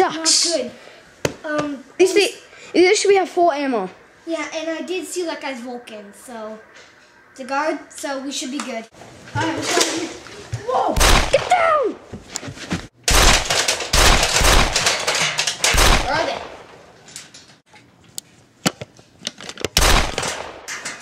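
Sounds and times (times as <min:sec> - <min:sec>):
person shouting: 0:10.6 - 0:12.0
rapid gunfire: 0:11.0 - 0:11.6, 0:13.1 - 0:15.0, 0:15.7 - 0:16.6, 0:19.8 - 0:20.6.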